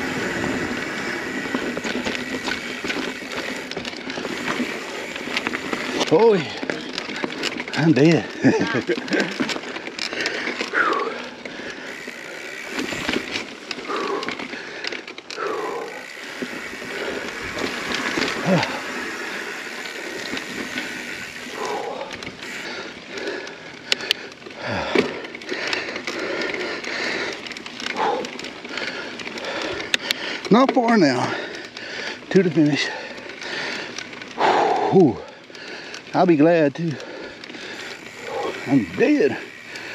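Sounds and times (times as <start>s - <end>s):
bike rattling over bumps: 0.0s - 39.9s
bike tyres on dirt trail: 0.0s - 39.9s
rider breathing heavily: 0.0s - 39.9s.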